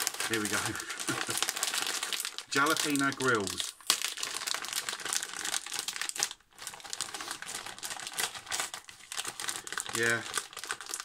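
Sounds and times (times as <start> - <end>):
crisp packet crinkling: 0.0 - 11.0.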